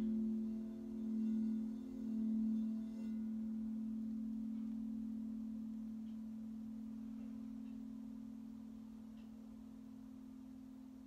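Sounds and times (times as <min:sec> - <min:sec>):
singing bowl ringing: 0:00.0 - 0:11.0.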